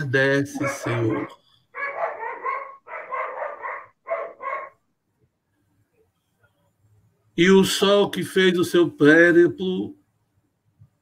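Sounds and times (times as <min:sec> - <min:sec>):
dog barking: 0:00.5 - 0:04.8.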